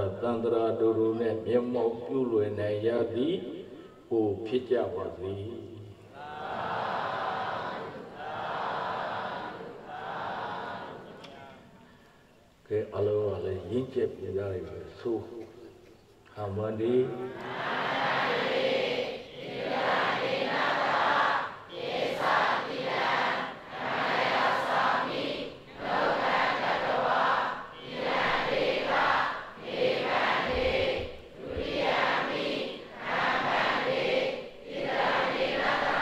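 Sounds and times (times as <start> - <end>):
congregation chanting in unison: 0.0 - 3.7, 4.3 - 11.8, 16.7 - 36.0.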